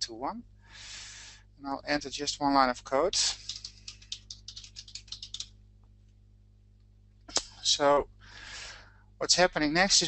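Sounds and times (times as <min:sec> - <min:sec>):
computer keyboard typing: 0:03.0 - 0:05.5.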